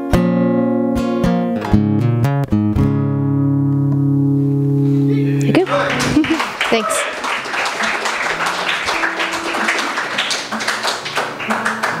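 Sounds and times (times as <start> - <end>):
audience applauding: 5.4 - 12.0.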